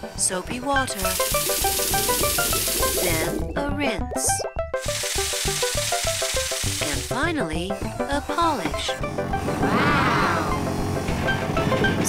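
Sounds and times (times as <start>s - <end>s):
light cartoon tune: 0.1s - 12.0s
water jets hissing: 0.9s - 3.4s, 4.8s - 7.3s.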